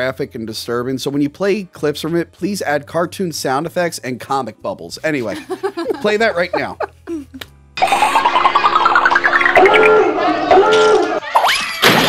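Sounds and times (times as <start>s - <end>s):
cartoon wobbling sound: 7.8s - 11.6s.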